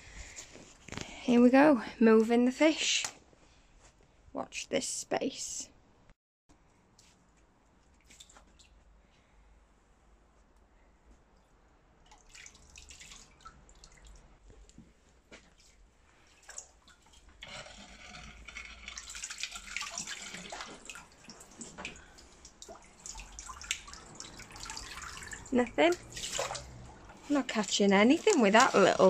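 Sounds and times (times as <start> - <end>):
pond water splashing and dripping: 7.9 - 8.8, 12.0 - 14.4, 15.4 - 29.0.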